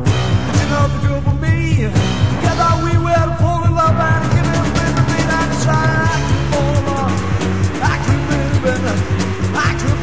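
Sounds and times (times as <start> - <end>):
busy bass line: 0.0 - 10.0
sliding lead guitar notes: 0.0 - 10.0
steady drum beat: 0.0 - 10.0.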